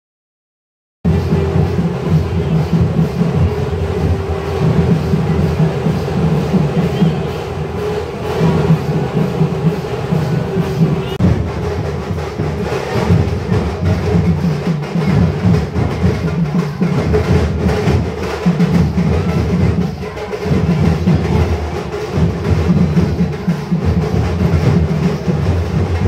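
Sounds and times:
folk band drumming fast: 0:01.0 - 0:26.0.

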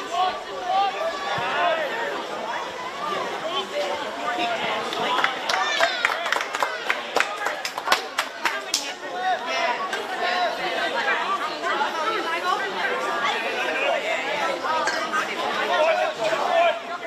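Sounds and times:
overlapping chatter of voices: 0:00.0 - 0:17.0.

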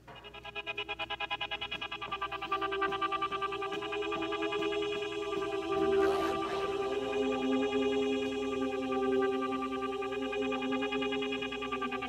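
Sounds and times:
pulsing synthesizer chord: 0:00.2 - 0:12.0.

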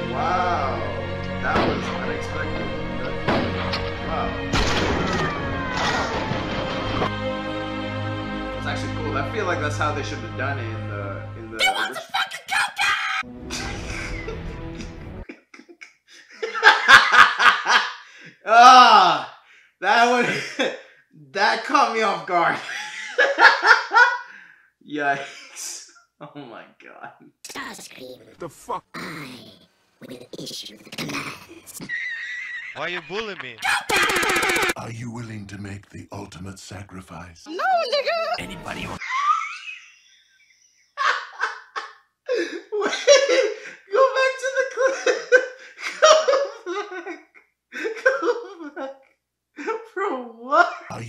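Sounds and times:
man laughing hard: 0:13.5 - 0:18.0, 0:31.8 - 0:34.8, 0:40.9 - 0:43.7, 0:44.8 - 0:49.0.

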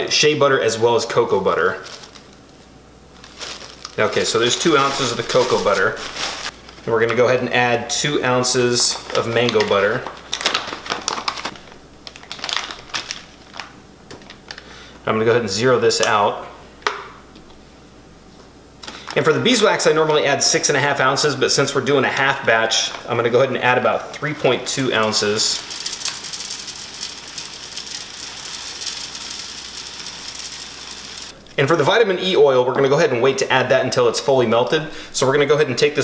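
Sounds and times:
paper bag crinkling: 0:01.8 - 0:02.5, 0:03.1 - 0:07.0, 0:08.9 - 0:14.7, 0:24.7 - 0:31.4
small pieces clicking into metal pitcher: 0:25.6 - 0:31.3.

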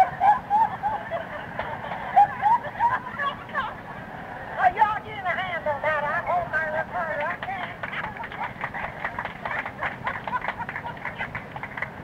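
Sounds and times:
crowd laughing: 0:00.0 - 0:04.6, 0:07.3 - 0:12.0.

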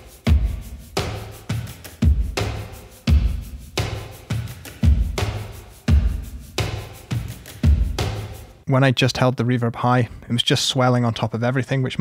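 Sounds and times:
drum hits with reverb: 0:00.3 - 0:08.5.

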